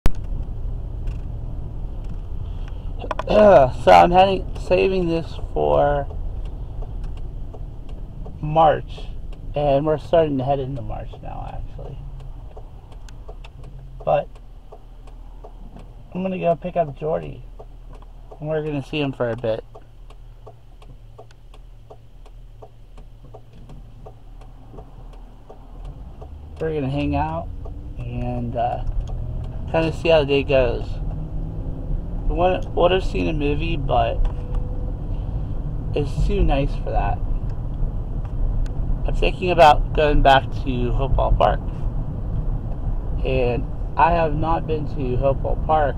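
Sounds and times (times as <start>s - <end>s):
car engine and tyre noise: 0.0s - 45.9s
turn signal clicking: 0.0s - 45.9s
faint ticks: 10.7s - 29.9s.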